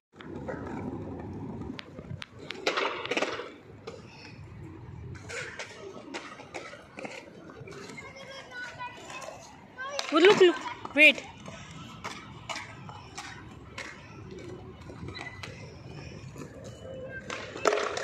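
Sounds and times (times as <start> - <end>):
young child calling and babbling: 7.7 - 10.8.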